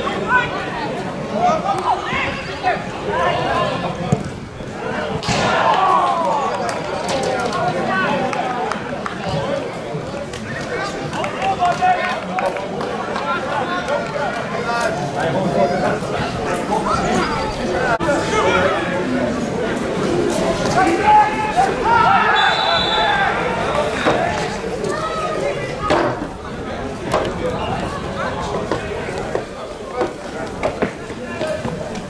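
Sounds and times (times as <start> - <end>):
people calling out and talking: 0.0 - 32.0
referee's whistle: 22.3 - 23.3.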